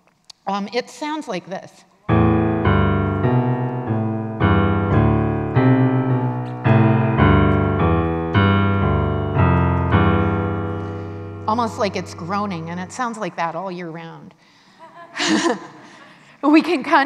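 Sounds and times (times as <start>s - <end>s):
electronic keyboard low piano notes: 2.1s - 13.7s.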